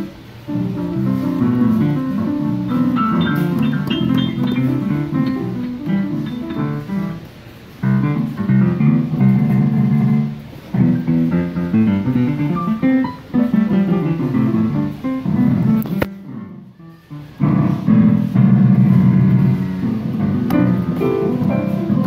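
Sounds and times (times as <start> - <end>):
children banging on piano keys: 0.0 - 22.0.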